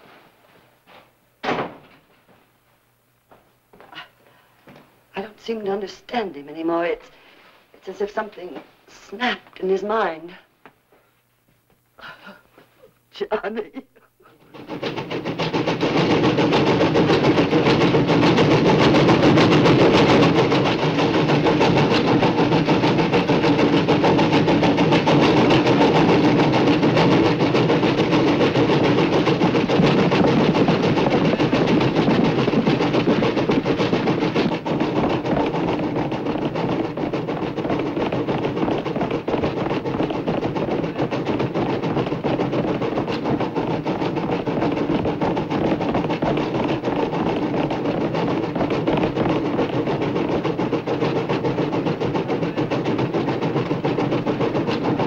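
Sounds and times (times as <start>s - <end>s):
steam locomotive running: 14.5s - 55.0s.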